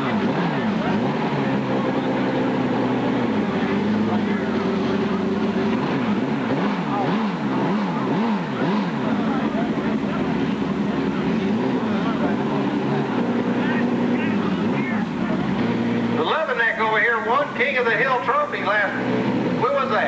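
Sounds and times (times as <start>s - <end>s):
motorcycle engine idling and revving: 0.0s - 20.0s.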